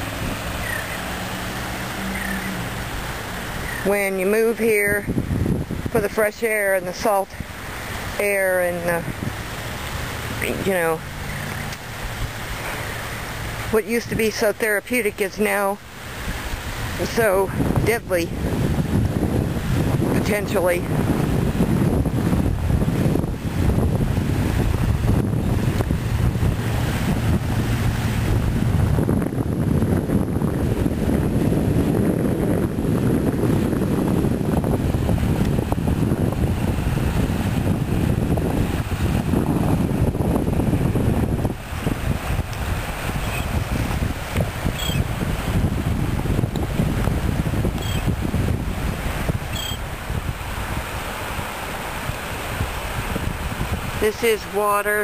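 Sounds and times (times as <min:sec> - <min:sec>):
small waves lapping on shore: 0:00.0 - 0:55.0
wind buffeting microphone: 0:00.0 - 0:55.0.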